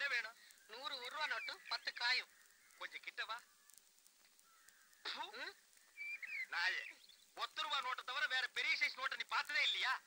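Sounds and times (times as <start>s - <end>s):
man speaking fast: 0.0s - 3.4s, 5.1s - 5.6s, 6.5s - 10.0s.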